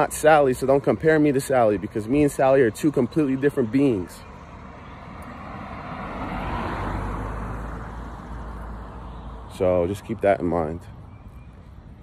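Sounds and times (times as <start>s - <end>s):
car passing by: 4.4s - 9.6s.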